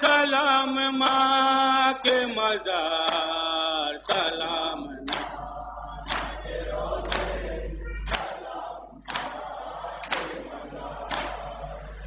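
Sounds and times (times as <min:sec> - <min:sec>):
people slapping their chests: 0:00.9 - 0:12.0
group chanting: 0:01.1 - 0:12.0.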